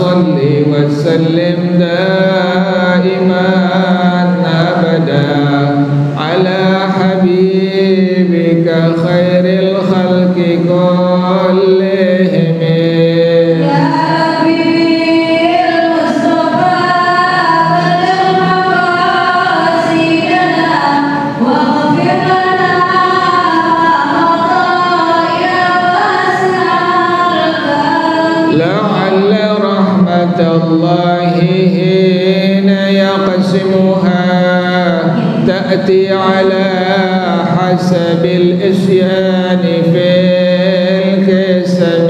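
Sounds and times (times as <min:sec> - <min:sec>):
man singing a melodic chant: 0:00.0 - 0:42.0.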